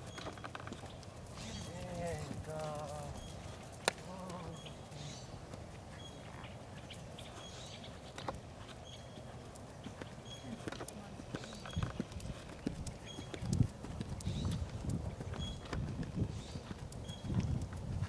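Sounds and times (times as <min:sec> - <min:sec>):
horse hoofbeats on sand: 0:08.3 - 0:18.0.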